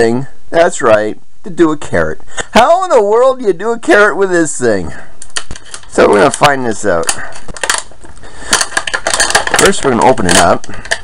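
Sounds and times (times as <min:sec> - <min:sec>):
plastic blister pack crackling: 0:05.2 - 0:11.0.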